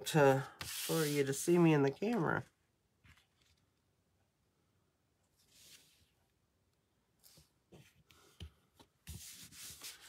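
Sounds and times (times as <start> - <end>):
paper rubbing and rustling: 0.6 - 1.4, 9.1 - 10.0.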